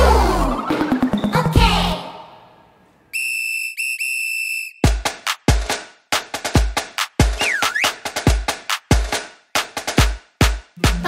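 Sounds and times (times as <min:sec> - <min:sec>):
high whistle tone: 0:03.1 - 0:05.0, 0:07.4 - 0:08.0
pop dance music: 0:09.8 - 0:11.0.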